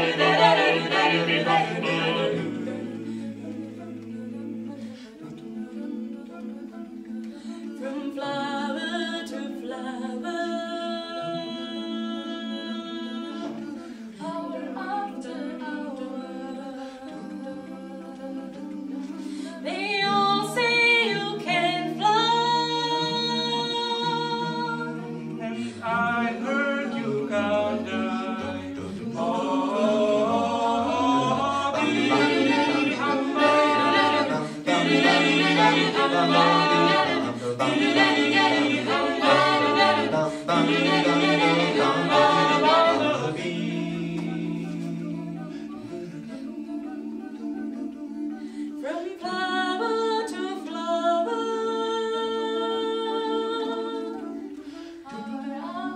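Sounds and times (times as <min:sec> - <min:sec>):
a cappella ensemble singing harmony: 0:00.0 - 0:55.9.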